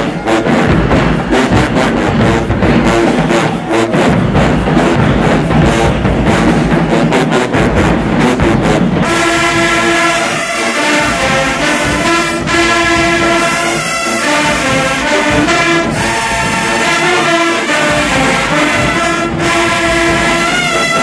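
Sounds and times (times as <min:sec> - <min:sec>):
drumline strokes: 0:00.0 - 0:21.0
marching band brass: 0:00.0 - 0:21.0.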